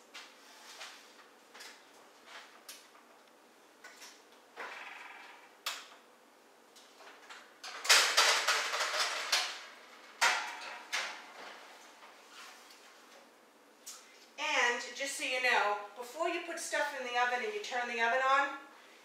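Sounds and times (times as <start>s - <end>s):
baking pans clattering and scraping: 7.7s - 12.7s.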